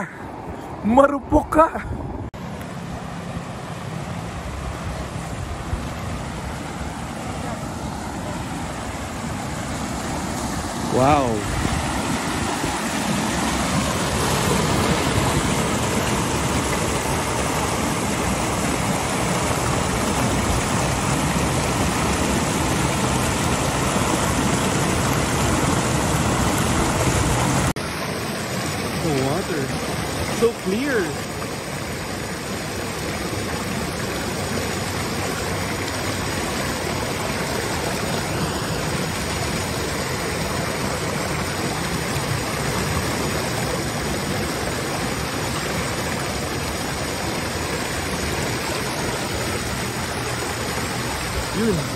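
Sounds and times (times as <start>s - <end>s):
river rushing over rocks: 0.0s - 51.9s.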